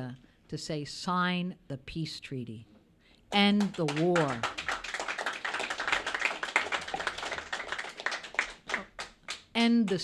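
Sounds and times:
audience applauding: 0:03.6 - 0:09.4.

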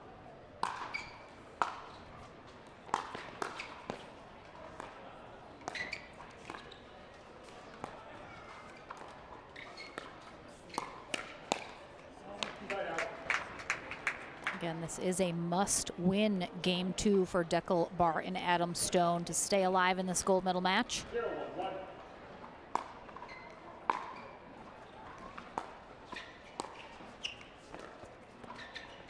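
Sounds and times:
paddles hitting a plastic ball: 0:00.6 - 0:01.0, 0:10.7 - 0:12.8, 0:22.7 - 0:25.8, 0:26.6 - 0:27.0
voices: 0:14.5 - 0:21.0.

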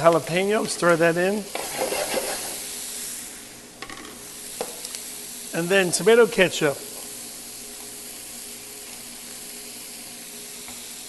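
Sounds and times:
meat and vegetables sizzling: 0:00.0 - 0:11.0.

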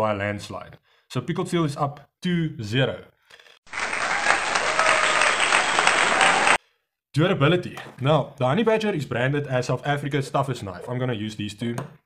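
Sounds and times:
crowd applause: 0:03.7 - 0:06.6.

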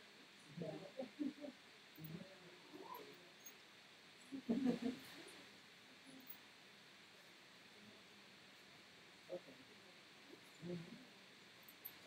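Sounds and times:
faint talking in a room: 0:00.0 - 0:12.0.

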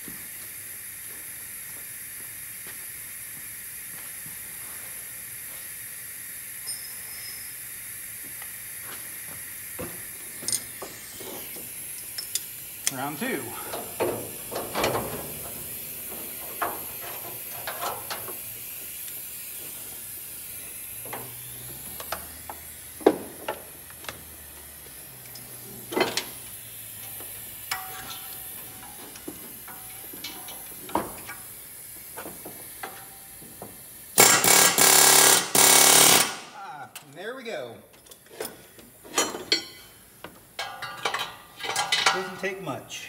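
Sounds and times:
pneumatic air hammer rattling: 0:09.6 - 0:36.6
metal tools clinking: 0:10.4 - 0:10.8, 0:12.1 - 0:15.3, 0:27.7 - 0:29.0, 0:38.0 - 0:40.0, 0:40.6 - 0:42.4.

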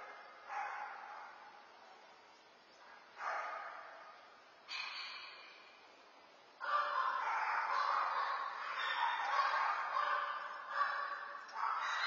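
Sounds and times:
dog barking: 0:00.0 - 0:01.5, 0:03.2 - 0:04.2, 0:06.6 - 0:12.0.

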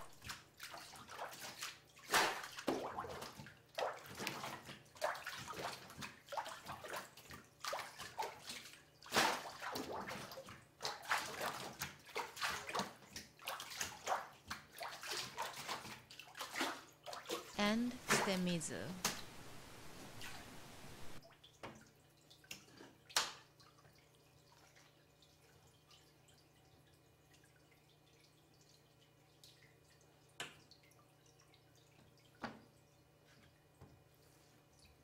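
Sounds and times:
water and pulp sloshing: 0:00.2 - 0:17.5.

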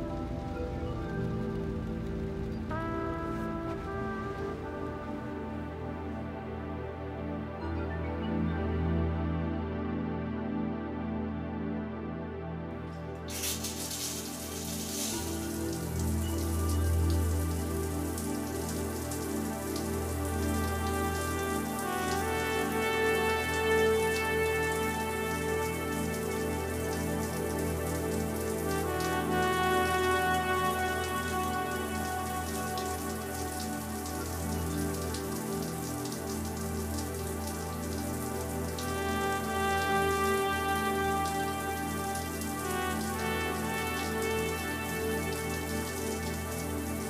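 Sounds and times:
slow music with held notes: 0:00.0 - 0:47.0
shower water spraying: 0:13.2 - 0:47.0.

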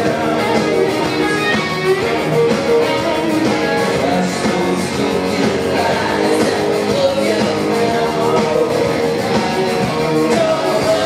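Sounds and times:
drums: 0:00.0 - 0:11.0
electric guitars: 0:00.0 - 0:11.0.

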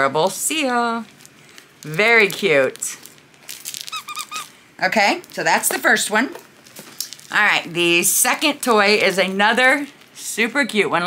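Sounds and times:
toy rustling: 0:01.0 - 0:04.6, 0:05.2 - 0:10.5
dog toy squeaking: 0:03.8 - 0:04.5.

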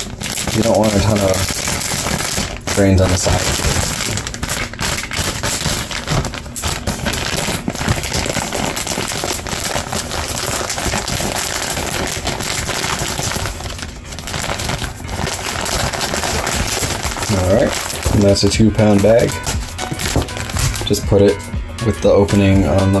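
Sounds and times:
plastic bag crinkling: 0:00.0 - 0:21.5.

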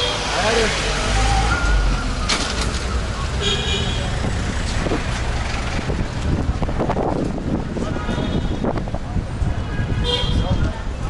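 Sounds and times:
low traffic rumble: 0:00.0 - 0:11.0
vehicles driving past: 0:00.0 - 0:11.0.

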